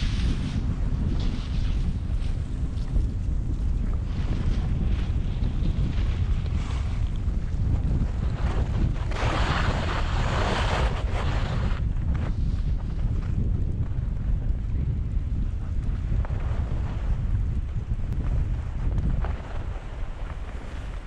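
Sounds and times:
skis hissing over snow: 0:00.0 - 0:02.4, 0:09.1 - 0:12.6, 0:19.3 - 0:21.0
wind buffeting microphone: 0:00.0 - 0:21.0.

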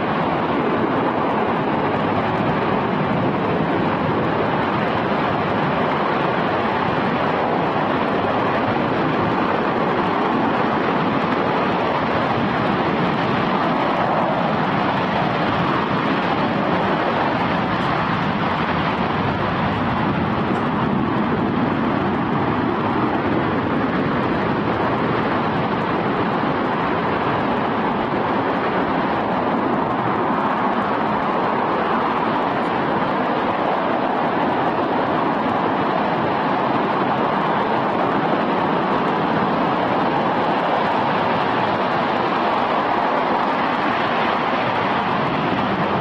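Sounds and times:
rocket engine roaring: 0:00.0 - 0:46.0.

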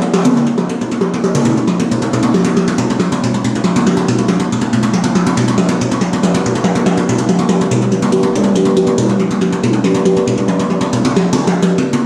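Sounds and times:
bass line: 0:00.0 - 0:12.0
drum kit played fast: 0:00.0 - 0:12.0.

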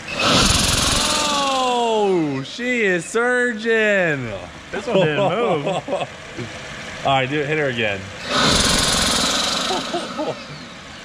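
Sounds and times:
turbochargers rushing air: 0:00.0 - 0:01.7, 0:08.2 - 0:11.0.

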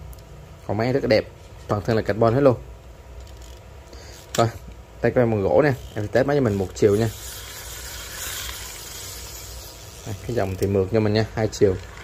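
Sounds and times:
fishing reel whirring: 0:03.2 - 0:04.4, 0:05.6 - 0:12.0.

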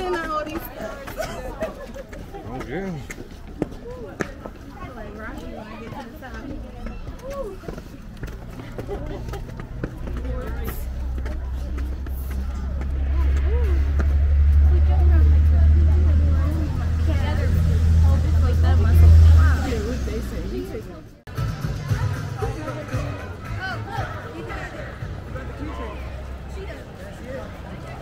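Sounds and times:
indistinct voices chatter: 0:00.0 - 0:28.0
vehicle engine rumble: 0:00.0 - 0:28.0.

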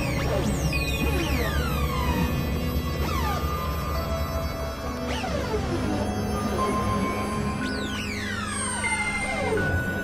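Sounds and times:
electronic tones sweeping downward: 0:00.0 - 0:10.0
held tones and low drone: 0:00.0 - 0:10.0.

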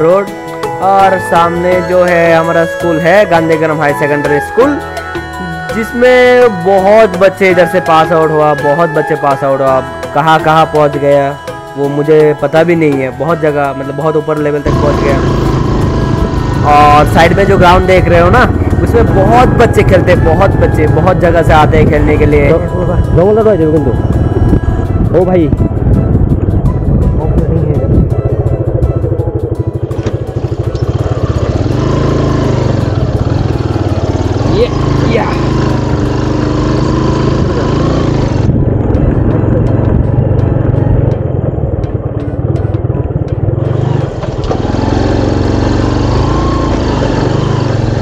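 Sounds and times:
motorcycle engine running: 0:14.4 - 0:48.0.

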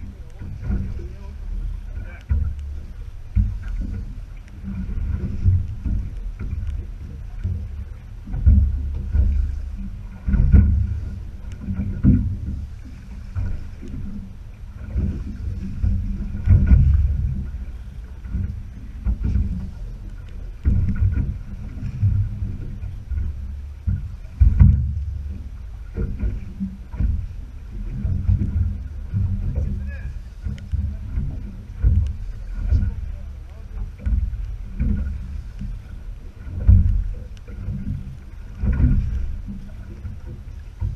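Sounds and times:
water against boat hull: 0:00.0 - 0:40.9
wind on microphone: 0:00.0 - 0:40.9.

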